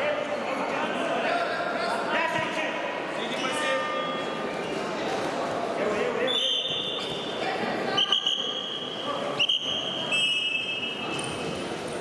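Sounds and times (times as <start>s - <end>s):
sports hall chatter: 0.0s - 12.0s
referee's whistle blasts: 8.0s - 11.3s.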